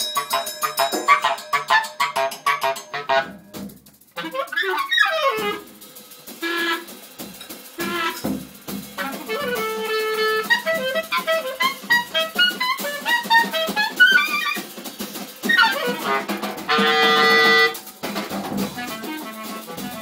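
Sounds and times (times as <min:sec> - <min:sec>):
drum and cymbal strikes: 0:00.0 - 0:20.0
clarinet playing: 0:00.1 - 0:03.4, 0:04.2 - 0:05.7, 0:06.4 - 0:06.9, 0:07.8 - 0:08.2, 0:09.0 - 0:14.7, 0:15.5 - 0:17.8, 0:18.7 - 0:20.0.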